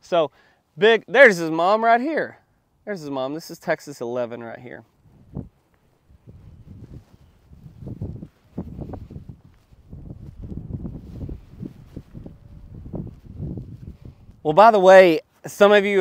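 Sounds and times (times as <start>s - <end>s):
wind buffeting microphone: 5.0s - 14.6s.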